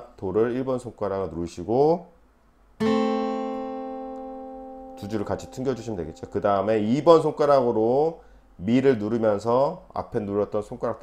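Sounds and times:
acoustic guitar notes ringing: 0:02.8 - 0:09.2.

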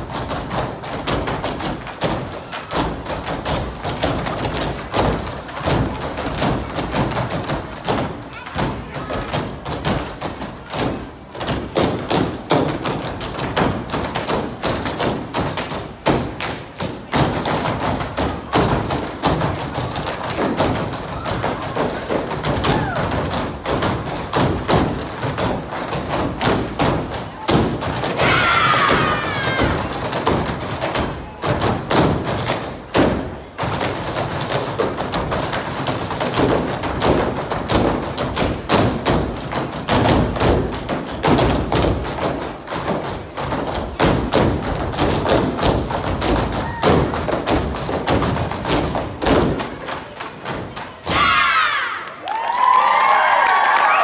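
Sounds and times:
jump ropes slapping floor: 0:00.0 - 0:51.6
crowd cheering and screaming: 0:28.2 - 0:29.8, 0:51.1 - 0:54.0.

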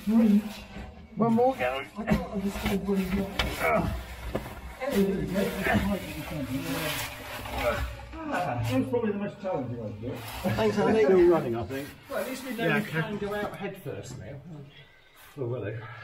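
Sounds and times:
suits scraping against rock: 0:00.0 - 0:08.9, 0:10.0 - 0:13.6.

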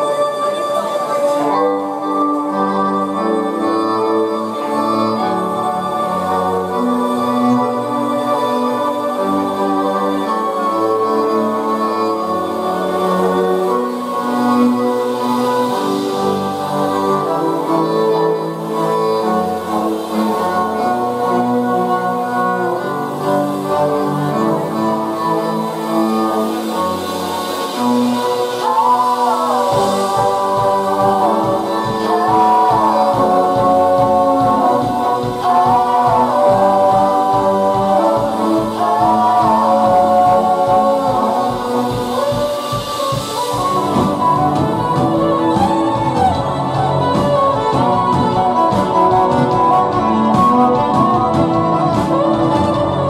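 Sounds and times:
bowed violin long notes: 0:00.0 - 0:53.0
cello: 0:00.0 - 0:53.0
low bowed string instrument: 0:00.0 - 0:53.0
women singing in harmony: 0:00.0 - 0:53.0
drum kit beat: 0:26.8 - 0:53.0.

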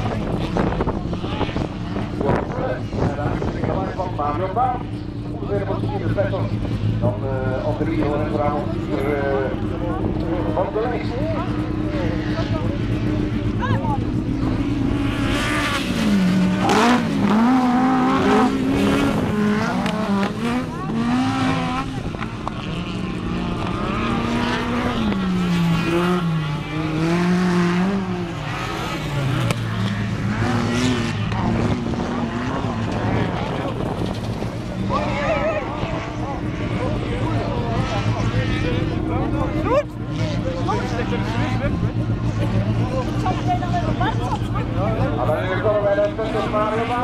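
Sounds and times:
race car engine revving: 0:00.0 - 0:47.0.

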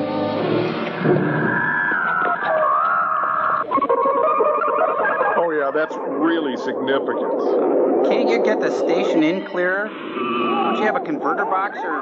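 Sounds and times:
eerie electronic warbling tones: 0:00.7 - 0:12.0.

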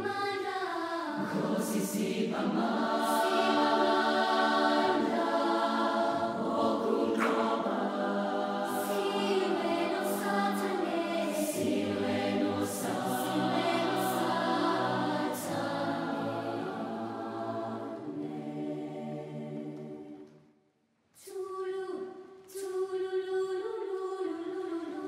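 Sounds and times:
choir singing held chords: 0:00.0 - 0:20.5.

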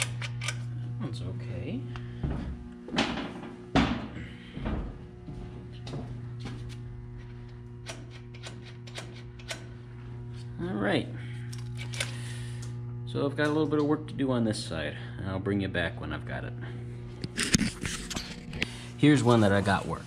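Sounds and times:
steady hum: 0:00.0 - 0:20.0.

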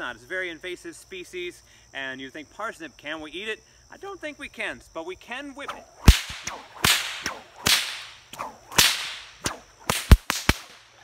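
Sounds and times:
bullwhip cracking: 0:05.6 - 0:11.0
whip swishing hiss: 0:05.6 - 0:11.0.

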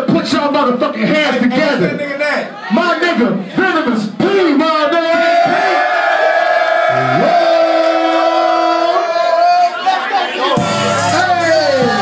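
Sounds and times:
crowd: 0:00.0 - 0:12.0
high held shout: 0:04.9 - 0:12.0.

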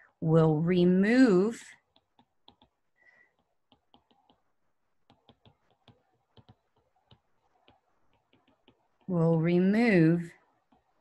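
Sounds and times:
stylus tapping on tablet screen: 0:00.8 - 0:11.0.

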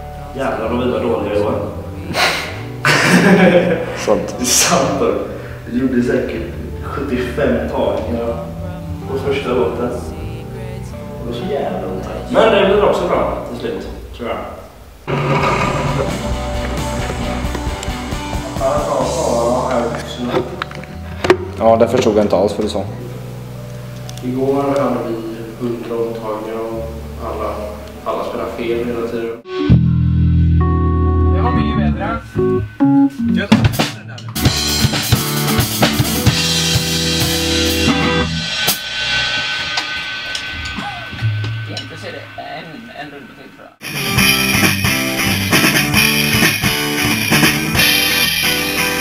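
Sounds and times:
band holding a chord: 0:06.0 - 0:14.1, 0:22.2 - 0:43.2
pop-rock band with guitar: 0:34.4 - 0:38.4, 0:43.8 - 0:49.0.

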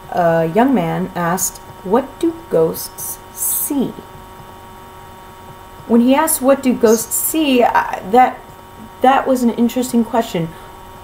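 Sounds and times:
woman speaking: 0:00.0 - 0:04.2, 0:05.8 - 0:10.7
faint electrical hum: 0:00.0 - 0:11.0.

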